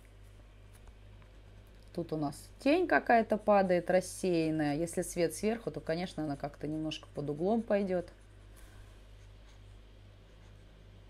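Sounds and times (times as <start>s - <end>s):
low electrical hum: 0.0s - 11.0s
quiet hiss: 0.0s - 11.0s.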